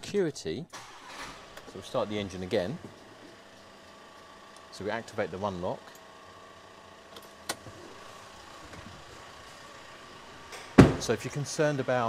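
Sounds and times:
diesel engine idling: 0.8s - 12.0s.

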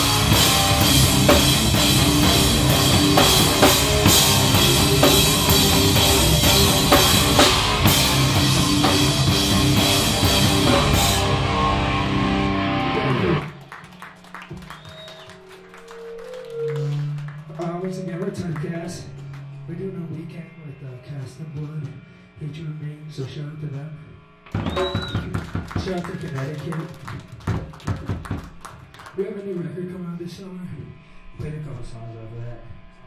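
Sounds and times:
amplifier hum: 0.0s - 13.6s
faint sustained guitar tones: 0.0s - 13.6s
hardcore band playing: 0.0s - 16.1s, 24.5s - 29.4s.

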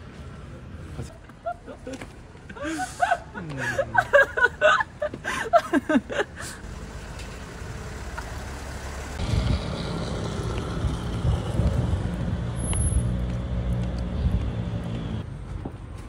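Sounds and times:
car engines and road noise: 0.0s - 16.0s.

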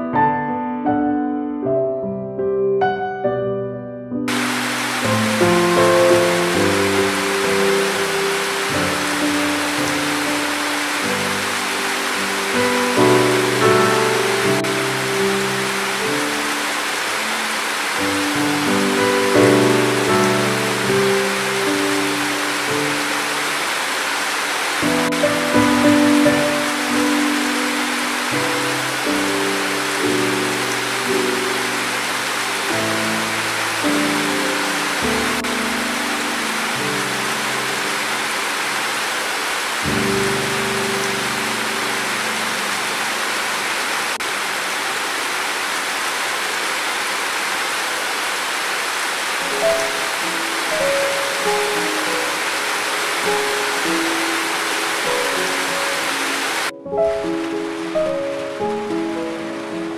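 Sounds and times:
soft slow piano music: 0.0s - 45.6s, 49.4s - 59.9s
steady rain: 4.3s - 59.9s.

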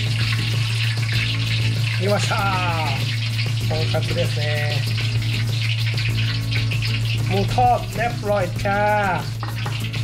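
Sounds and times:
oil sizzling in deep fryer: 0.0s - 10.0s.

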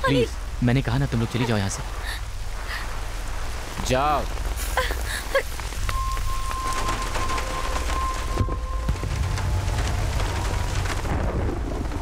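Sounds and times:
continuous low rumble: 0.0s - 12.0s
heavy rain splashing on pavement: 0.0s - 12.0s.

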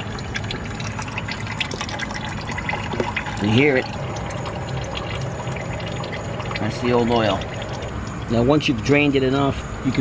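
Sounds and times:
oil stream splashing into pan: 0.0s - 8.3s.

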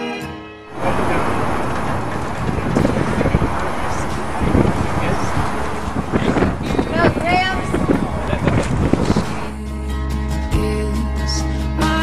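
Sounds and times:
faint voices: 0.7s - 9.6s
wind buffeting microphone: 0.7s - 9.6s.

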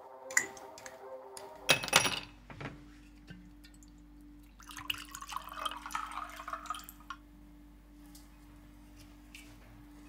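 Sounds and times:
low steady hum: 1.6s - 10.0s
liquor pouring into a glass: 4.5s - 7.2s.

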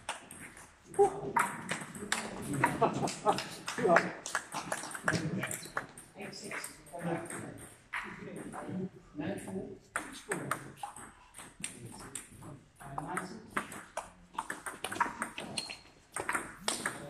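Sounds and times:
table tennis ball clicking: 13.6s - 17.0s.

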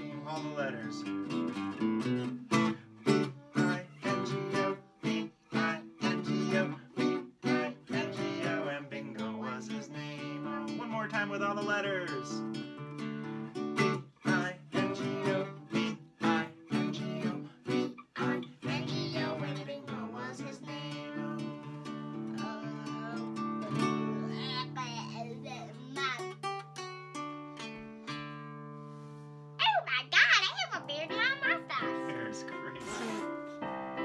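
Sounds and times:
people singing: 0.0s - 0.4s, 3.6s - 10.8s, 14.2s - 21.6s
nylon-string guitar strummed: 0.0s - 29.0s
child's voice: 16.9s - 21.6s, 22.2s - 26.6s, 29.6s - 33.3s.

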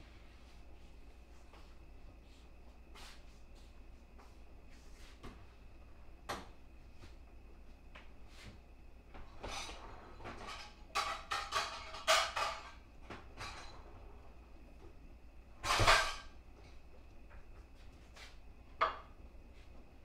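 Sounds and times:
dishes and utensils clattering: 9.3s - 14.0s, 15.6s - 16.4s.

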